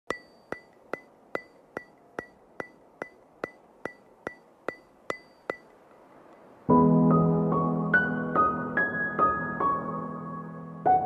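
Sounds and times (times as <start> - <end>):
sharp ticks with high ring: 0.1 - 6.5.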